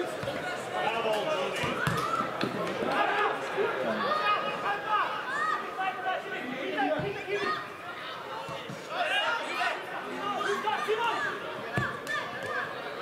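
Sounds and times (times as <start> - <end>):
people shouting and calling: 0.5 - 13.0.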